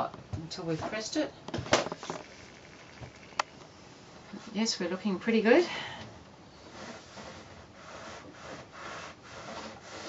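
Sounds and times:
iron rubbing over fabric: 6.6 - 10.0.

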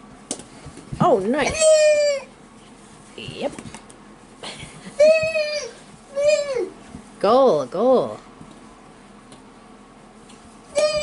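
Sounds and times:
toddler calling out: 5.0 - 6.8, 10.7 - 11.0.

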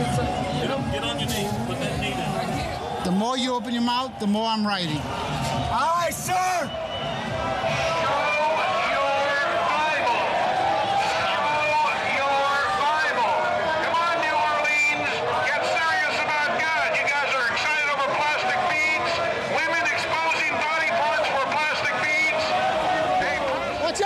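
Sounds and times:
man talking through megaphone: 0.0 - 6.8, 7.5 - 24.0
crowd babble: 0.0 - 24.0.

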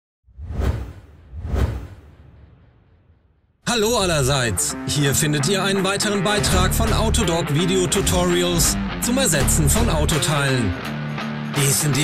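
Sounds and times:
deep whoosh sound effects: 0.3 - 3.5.

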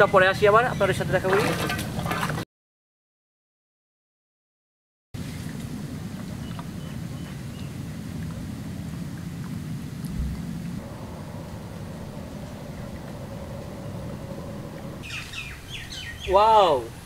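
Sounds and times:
low mechanical hum: 5.2 - 16.0
faint higher tone: 10.1 - 15.0.

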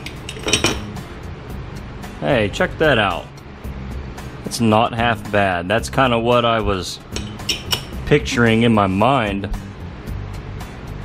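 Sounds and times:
metal mold halves clinking: 0.0 - 0.9, 7.1 - 8.0
steady low hum: 0.0 - 11.0.

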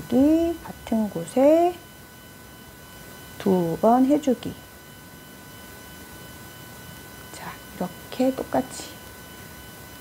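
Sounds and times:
faint high electrical tones: 0.0 - 10.0
low background hiss: 0.0 - 10.0.

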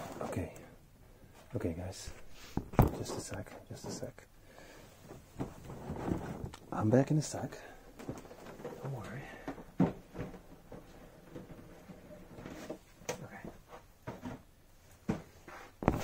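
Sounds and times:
soft rustling of cardboard: 4.9 - 16.0.

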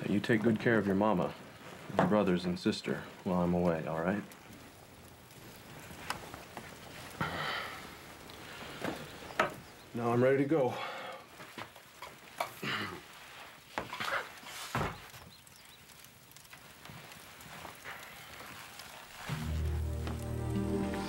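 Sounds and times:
shuffling and clothing rustle: 0.0 - 9.7, 11.3 - 21.0
short breaths: 7.1 - 9.3, 10.7 - 11.4
slow sad music: 19.3 - 21.0.

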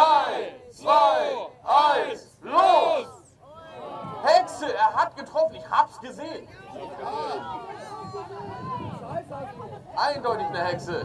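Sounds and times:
indistinct chatter of voices: 0.0 - 4.8, 6.4 - 11.0.

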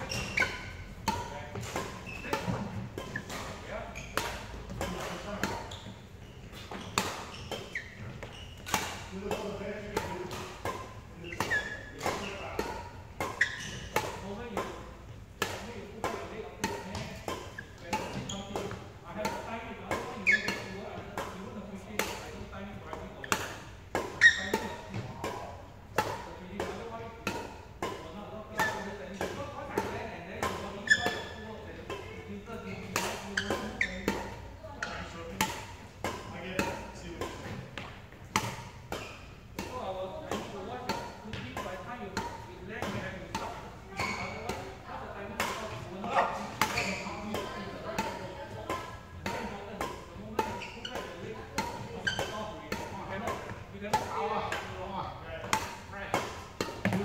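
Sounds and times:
racket hitting shuttlecock: 0.0 - 54.8, 55.4 - 57.0.

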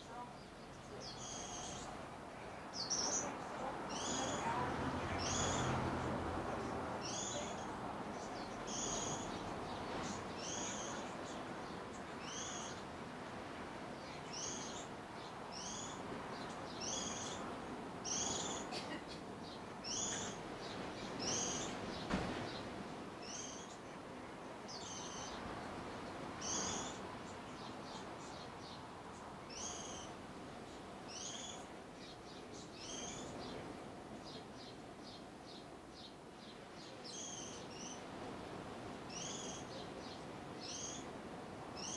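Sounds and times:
background hiss: 0.0 - 41.9
soft knock: 22.1 - 22.5.

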